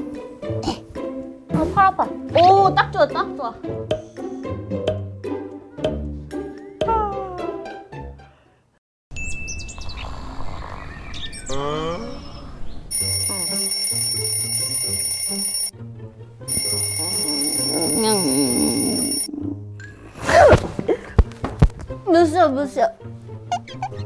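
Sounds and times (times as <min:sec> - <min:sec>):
cheerful background music: 0:00.0 - 0:08.6, 0:12.9 - 0:24.0
birds chirping: 0:09.1 - 0:12.9
alarm ringing: 0:12.9 - 0:15.7, 0:16.5 - 0:19.3.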